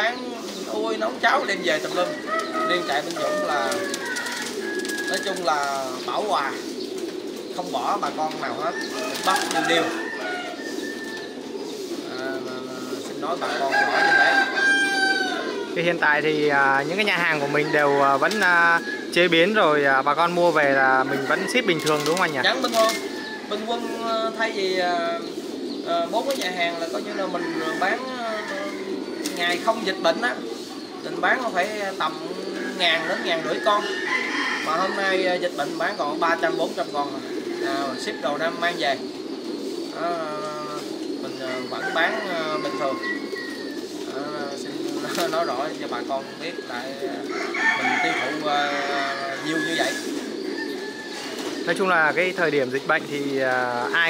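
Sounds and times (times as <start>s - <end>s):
pigeons cooing: 0.0s - 54.0s.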